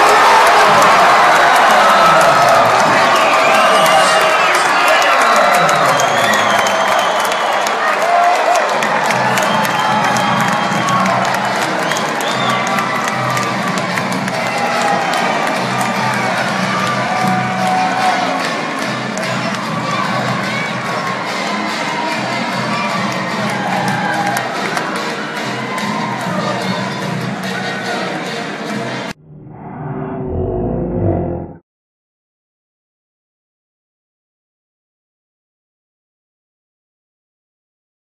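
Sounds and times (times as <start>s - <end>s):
crowd cheering and shouting: 0.0s - 29.2s
dense clapping: 0.1s - 19.7s.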